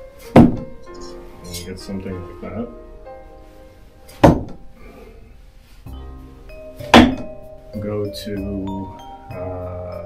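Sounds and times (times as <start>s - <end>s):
knife striking target: 6.9s - 7.3s.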